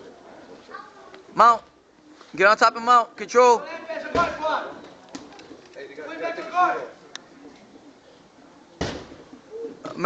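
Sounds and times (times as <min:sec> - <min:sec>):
dull thud: 0:04.1 - 0:04.4, 0:08.8 - 0:09.2.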